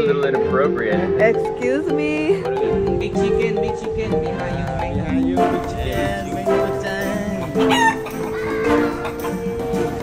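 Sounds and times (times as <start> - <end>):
background music sustained notes: 0.0 - 10.0
chicken clucking: 5.5 - 10.0.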